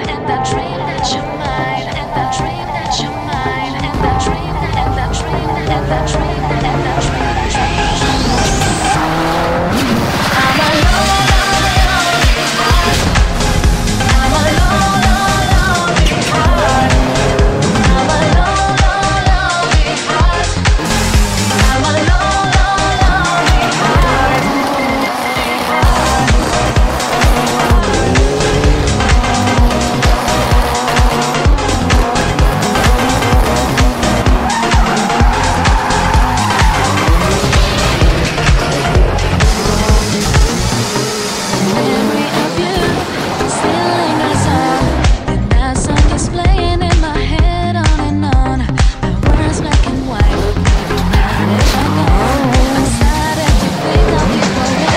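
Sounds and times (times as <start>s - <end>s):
loud music: 0.0s - 54.9s
rally car engine running: 0.0s - 54.9s
tyres squealing: 0.3s - 46.8s, 49.2s - 54.9s.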